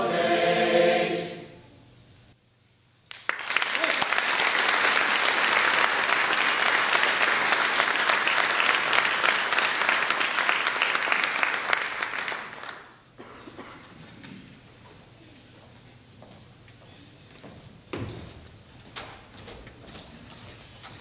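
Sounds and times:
choir singing: 0.0s - 1.7s
audience clapping: 3.1s - 13.1s.

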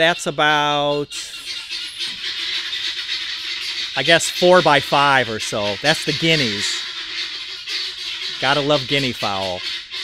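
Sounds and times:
guinea fowl calling: 0.0s - 10.0s.

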